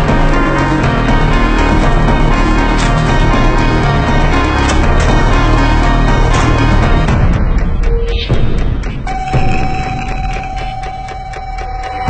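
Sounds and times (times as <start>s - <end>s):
low rumbling drone: 0.0s - 11.5s.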